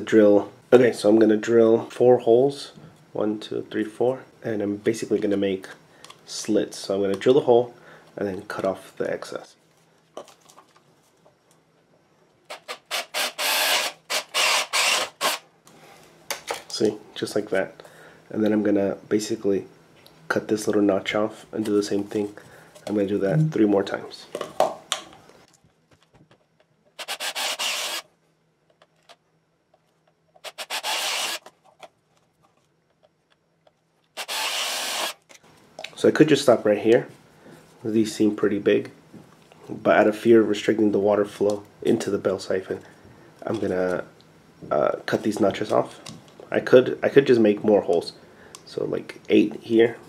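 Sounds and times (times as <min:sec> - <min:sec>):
cordless drill drilling plastic pipe: 0:12.5 - 0:15.4, 0:27.0 - 0:28.1, 0:30.4 - 0:31.5, 0:34.2 - 0:35.2.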